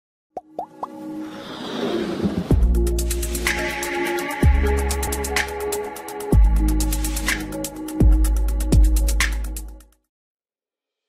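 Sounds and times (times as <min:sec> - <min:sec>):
rising swell: 0:00.9 - 0:06.0.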